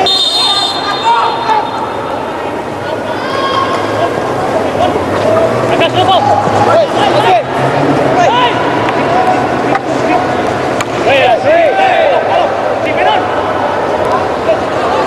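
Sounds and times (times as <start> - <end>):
players shouting: 0.0 - 15.0
stadium hum: 0.0 - 15.0.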